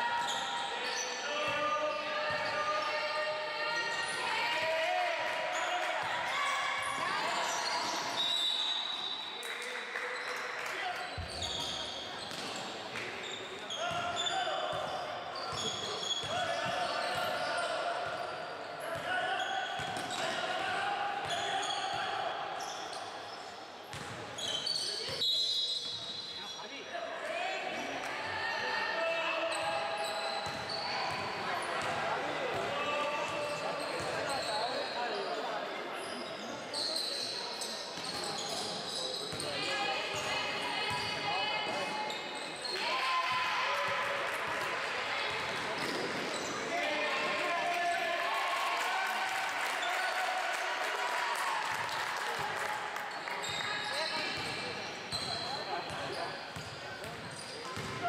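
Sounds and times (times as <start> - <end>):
basketball bouncing on court: 23.9 - 24.2, 54.3 - 58.0.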